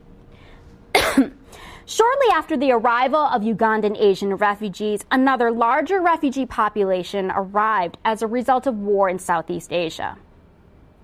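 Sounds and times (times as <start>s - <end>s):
person coughing: 0.9s - 1.5s.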